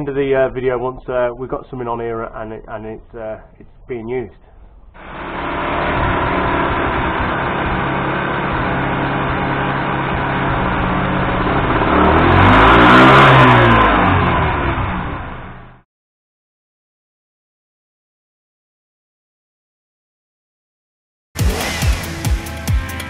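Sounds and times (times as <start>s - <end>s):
motorcycle engine revving: 5.0s - 15.8s, 21.4s - 23.0s.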